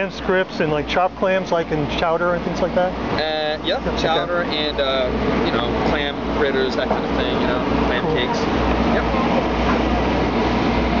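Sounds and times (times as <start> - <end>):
machinery rumbling and hissing: 0.0 - 11.0.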